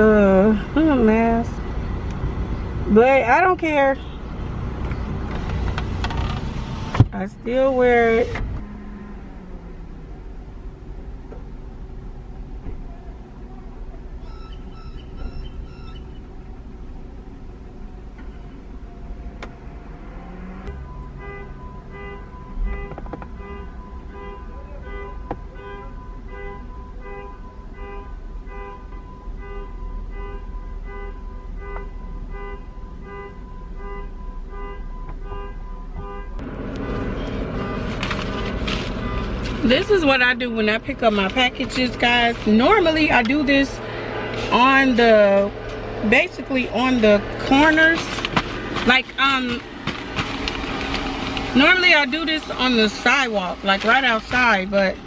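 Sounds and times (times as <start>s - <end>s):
car warning chime dinging: 14.2s - 16.3s, 20.6s - 36.4s
rustling and handling noise: 36.9s - 39.9s, 47.4s - 51.5s.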